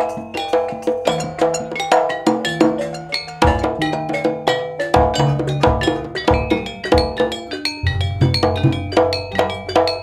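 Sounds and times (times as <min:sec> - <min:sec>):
gamelan gongs and metallophones: 0:00.0 - 0:10.0.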